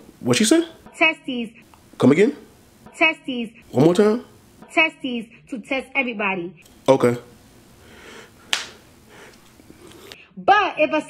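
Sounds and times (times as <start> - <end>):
faint room noise: 0.0 - 10.6.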